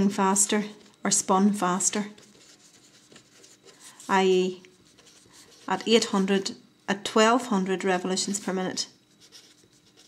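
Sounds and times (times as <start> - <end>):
pen scratching on paper: 2.2 - 6.1, 9.2 - 10.0.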